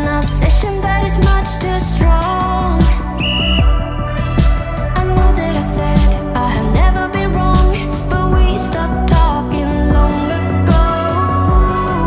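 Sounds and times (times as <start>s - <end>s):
pop music with steady beat: 0.0s - 12.0s
high timer beep: 3.2s - 3.8s.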